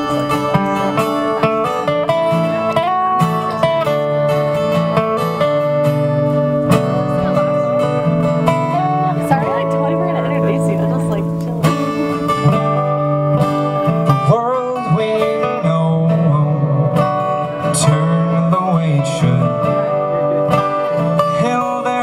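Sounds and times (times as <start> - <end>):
acoustic guitar: 0.0 - 22.0
picked lead string instrument: 0.0 - 22.0.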